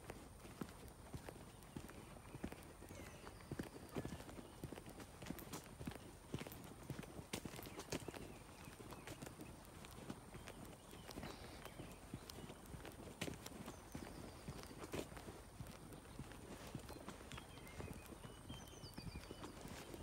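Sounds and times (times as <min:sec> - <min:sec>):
footsteps on dirt track: 0:00.0 - 0:20.0.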